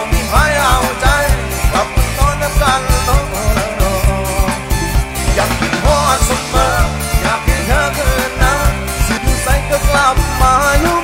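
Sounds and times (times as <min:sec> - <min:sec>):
drum kit fast beat: 0:00.0 - 0:11.0
male lead singer: 0:00.0 - 0:11.0.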